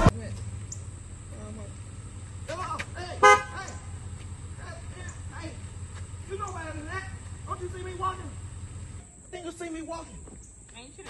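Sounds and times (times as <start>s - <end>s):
car horn honk: 1.9s - 9.0s.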